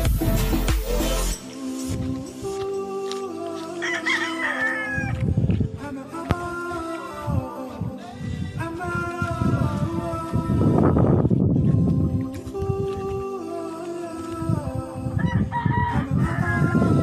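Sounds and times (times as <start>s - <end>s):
music with steady beat: 0.0s - 3.8s
rooster crowing: 3.8s - 5.2s, 15.2s - 17.0s.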